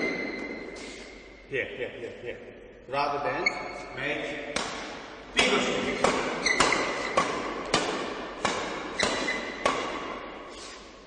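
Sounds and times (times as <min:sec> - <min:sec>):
racket hitting shuttlecock: 0:04.5 - 0:11.0.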